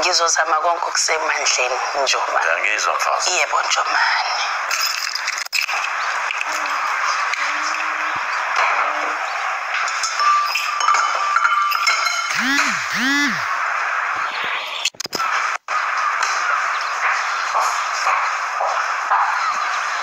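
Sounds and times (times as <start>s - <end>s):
people talking: 0.0s - 4.6s, 12.3s - 13.5s
television drama soundtrack: 0.0s - 10.2s.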